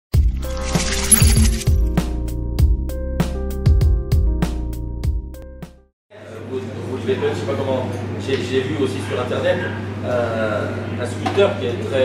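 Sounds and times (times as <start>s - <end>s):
logo intro music with low beats: 0.2s - 5.8s
bright glittering shimmer: 0.4s - 1.9s.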